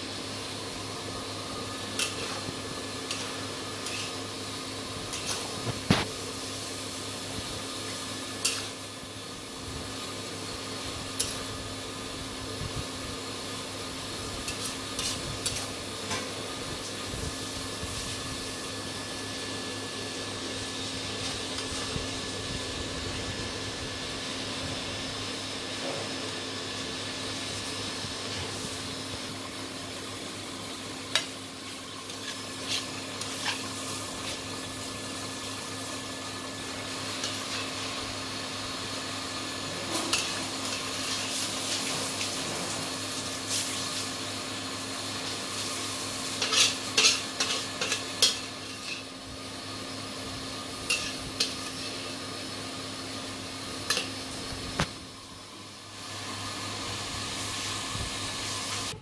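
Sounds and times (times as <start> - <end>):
steady hiss and hum: 0.0 - 59.0
metal spatula scraping a wok: 1.9 - 4.2, 5.1 - 5.6, 14.4 - 15.8, 32.1 - 34.4, 39.9 - 41.9, 46.4 - 49.1, 50.9 - 52.2.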